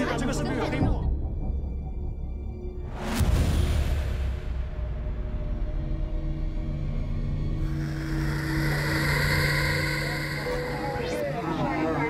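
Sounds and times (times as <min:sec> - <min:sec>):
low drone hum: 0:04.4 - 0:12.0.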